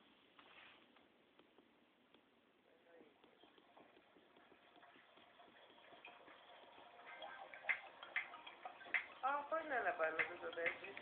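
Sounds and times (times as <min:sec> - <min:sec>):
faint irregular ticks and clicks: 0:00.9 - 0:11.0.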